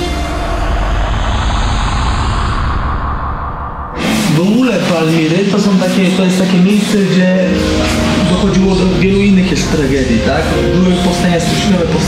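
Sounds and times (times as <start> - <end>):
deep engine rumble: 0.0 - 6.2, 7.5 - 12.0
noisy hiss: 0.0 - 12.0.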